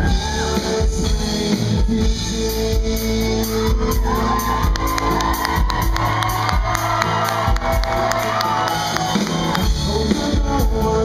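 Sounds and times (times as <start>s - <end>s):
live band playing: 0.0s - 11.0s
audience whooping: 3.4s - 10.1s.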